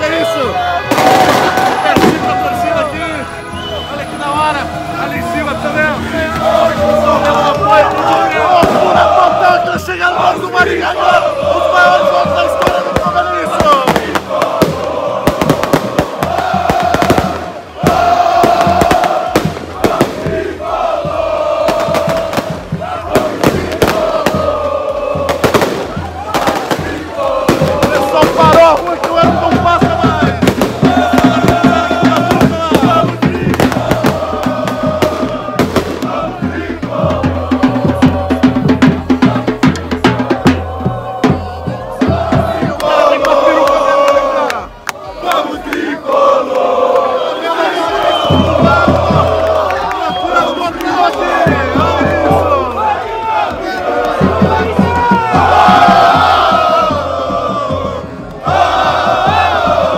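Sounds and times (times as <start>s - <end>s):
bass drums beating: 0.0s - 59.9s
crowd singing a chant: 0.0s - 59.9s.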